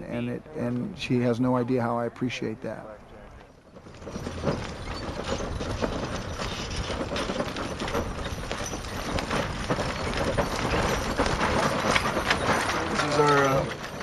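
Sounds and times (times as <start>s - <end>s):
mule hoofbeats clattering: 3.3s - 14.0s
harness and wagon rattling: 3.4s - 14.0s.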